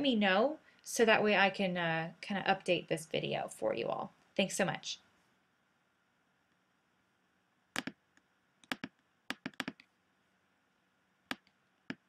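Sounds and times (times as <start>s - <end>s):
faint room hiss: 0.0s - 12.0s
sharp computer clicks: 7.7s - 9.9s.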